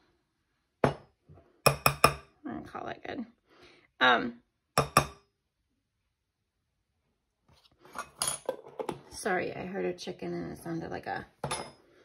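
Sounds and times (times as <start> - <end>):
kitchen utensils knocking: 11.4 - 11.8.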